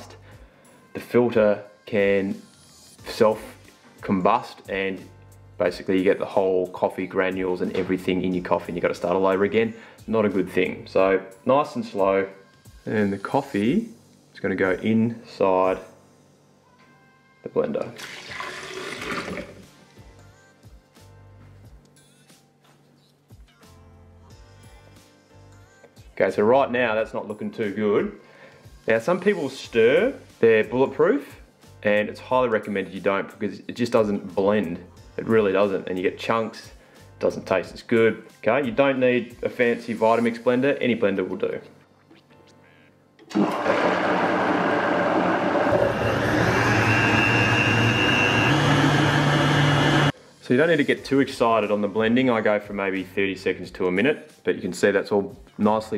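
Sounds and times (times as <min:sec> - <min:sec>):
background music: 0:00.0 - 0:55.9
coffee pouring into plastic jug: 0:17.8 - 0:19.7
blender motor running: 0:18.0 - 0:19.6, 0:43.3 - 0:50.1.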